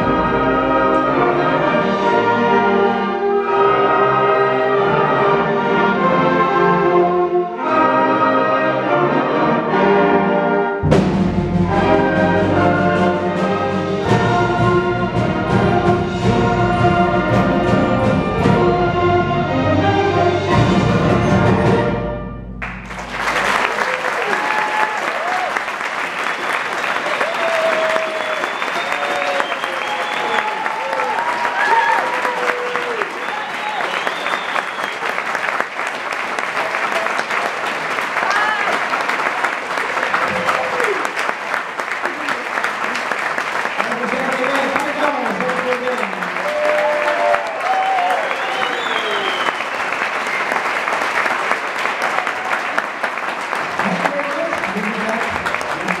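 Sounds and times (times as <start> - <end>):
audience applauding: 22.6 - 56.0
cheers and voices: 23.7 - 25.5, 27.0 - 34.2, 38.2 - 38.8, 46.4 - 49.4.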